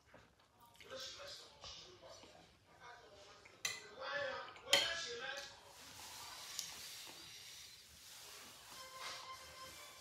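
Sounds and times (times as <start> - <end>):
fork clinking on ceramic bowl: 4.6 - 5.1.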